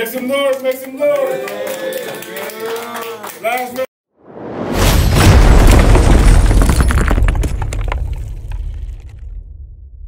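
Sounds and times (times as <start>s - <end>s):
deep boom with low rumble: 4.4s - 10.0s
crumbling debris crackling: 4.8s - 9.7s.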